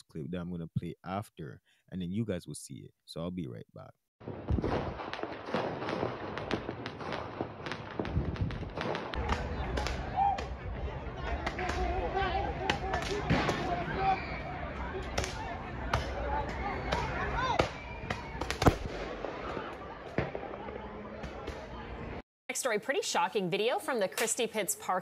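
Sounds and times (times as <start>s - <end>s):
fireworks popping and cracking: 4.2s - 10.1s, 18.4s - 20.5s
fireworks bangs: 4.2s - 12.1s, 12.7s - 14.4s, 15.1s - 21.8s
people's voices: 9.2s - 18.4s.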